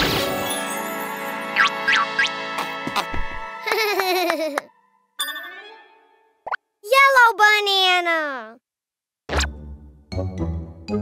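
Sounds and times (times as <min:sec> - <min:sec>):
cartoon music: 0:01.6 - 0:02.7.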